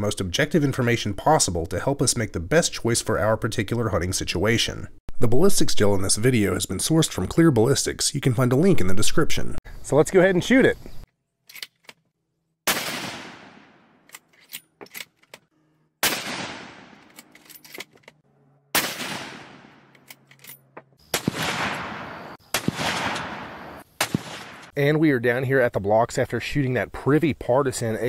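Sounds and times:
rifle shots with echo: 12.7s - 13.9s, 16.0s - 17.1s, 18.7s - 19.9s, 21.1s - 24.7s.

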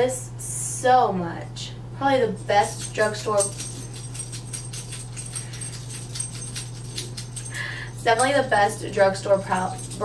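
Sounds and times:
steady low hum: 0.0s - 10.0s
dog claws clicking: 2.8s - 7.6s.

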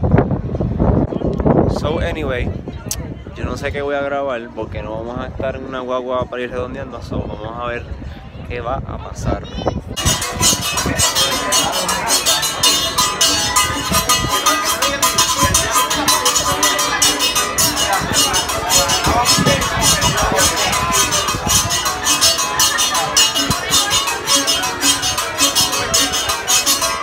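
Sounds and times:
fast percussion beat: 10.0s - 27.0s.

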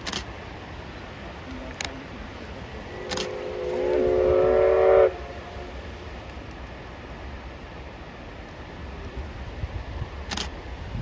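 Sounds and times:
single click: 0.0s - 0.3s, 3.1s - 3.4s, 10.3s - 10.5s
electric locomotive horn: 2.8s - 5.8s.

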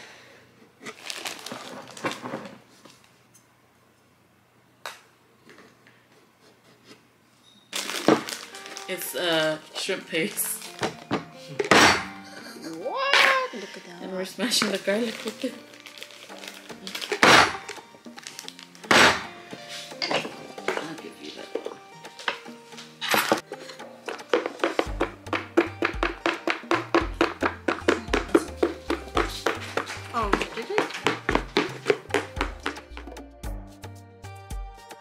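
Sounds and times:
background music with steady beat: 16.2s - 35.0s
wooden pestle pounding in bowl: 24.0s - 33.2s.

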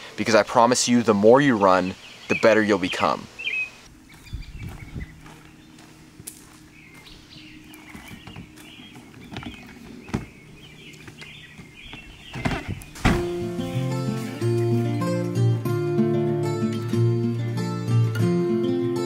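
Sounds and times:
birds chirping: 0.0s - 15.6s
faint steady music: 3.8s - 9.3s
suitcase knocks and thumps: 7.9s - 10.4s, 11.1s - 13.8s
car trunk shutting: 12.4s - 13.8s
strummed acoustic guitar music: 13.0s - 19.0s.

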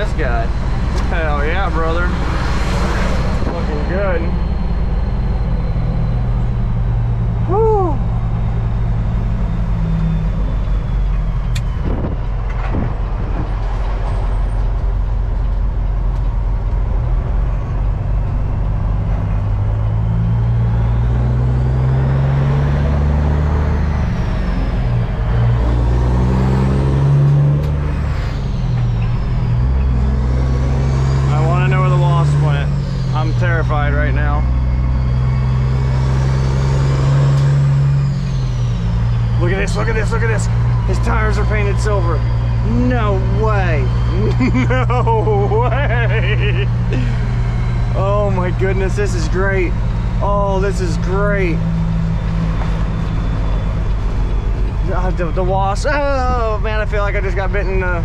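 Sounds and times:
truck diesel engine accelerating: 0.0s - 58.0s.

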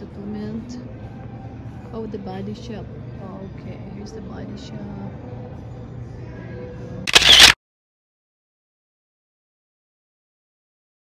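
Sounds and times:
faint indoor mall hum: 0.0s - 7.5s
camera shutter sound effect: 7.1s - 7.6s.

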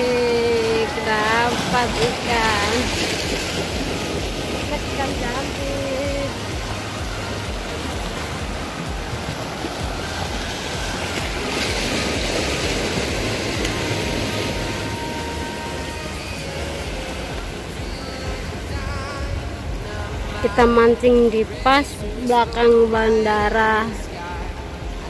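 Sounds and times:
sea waves washing over rocks: 0.0s - 25.0s
wind rumbling on microphone: 0.0s - 25.0s.

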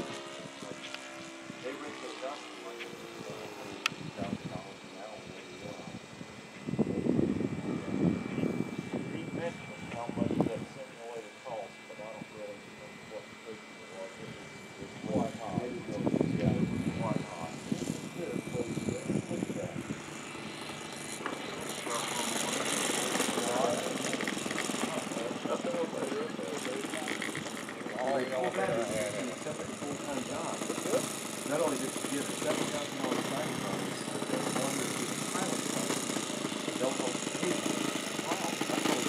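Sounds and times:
jumble of nearby noise: 0.0s - 39.0s
model airplane engine whine: 0.0s - 39.0s
voices: 0.0s - 39.0s.

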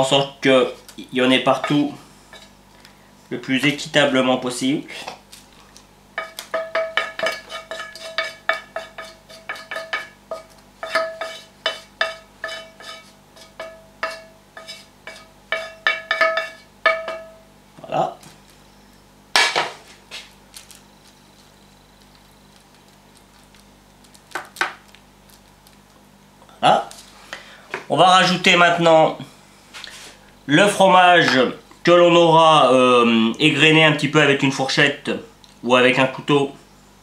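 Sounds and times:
wooden spatula scraping metal pan: 6.2s - 17.3s.

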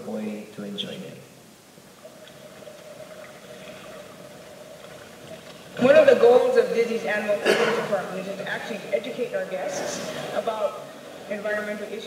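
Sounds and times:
faint steady hum: 0.0s - 12.0s
low hiss: 0.0s - 12.0s.

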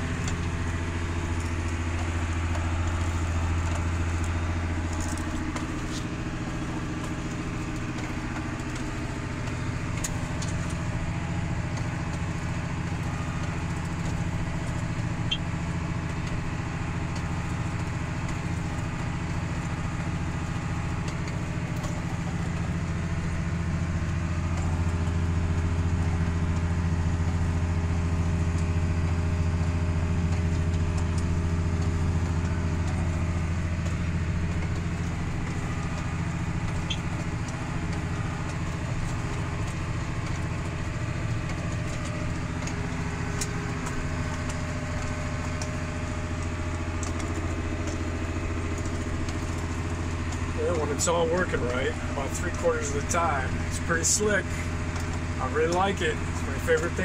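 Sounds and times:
tractor diesel engine droning: 0.0s - 57.0s.

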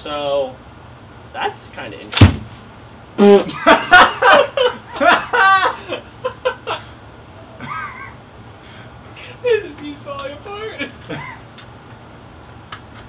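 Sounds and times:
man laughing out loud: 3.2s - 8.2s, 10.8s - 11.6s.

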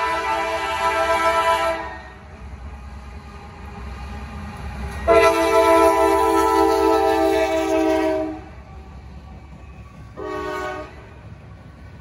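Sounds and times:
locomotive air horn chord: 0.0s - 2.2s, 5.1s - 8.5s, 10.2s - 11.1s
low rumble of diesel train: 0.0s - 12.0s.

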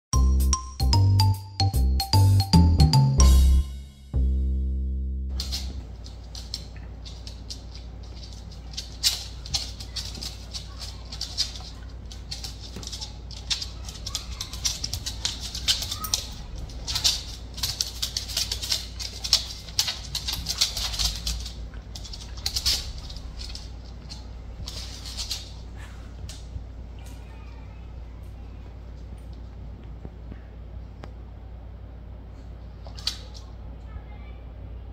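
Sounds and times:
intro jingle: 0.2s - 5.4s
low steady hum: 0.2s - 34.9s
dog claws clicking on wooden floor: 5.4s - 27.2s.

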